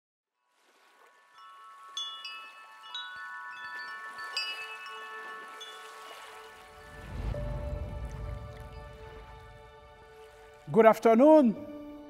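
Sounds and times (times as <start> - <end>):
chimes ringing: 1.0 - 9.7.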